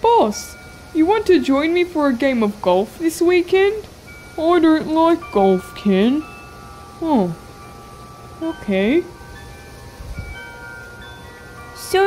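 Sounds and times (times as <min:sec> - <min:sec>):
soft chime notes: 0:00.2 - 0:01.9, 0:04.0 - 0:12.0.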